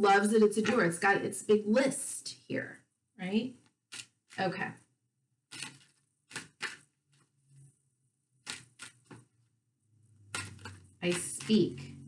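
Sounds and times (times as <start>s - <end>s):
cards being shuffled: 3.9s - 4.2s, 5.5s - 7.3s, 8.4s - 9.3s, 10.3s - 11.6s.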